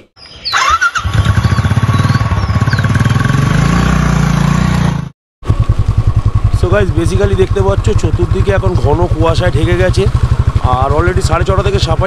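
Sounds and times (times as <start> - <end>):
motorcycle engine thumping: 1.3 - 12.0.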